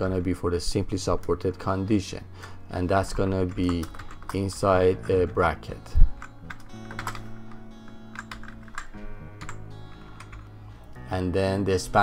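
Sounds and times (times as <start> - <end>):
background music with low notes: 0.0 - 12.0
keyboard typing: 3.1 - 5.4, 6.0 - 10.6.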